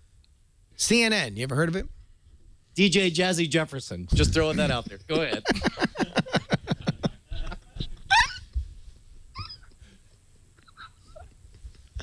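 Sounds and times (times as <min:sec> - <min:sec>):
stifled laughter: 0:05.1 - 0:08.4.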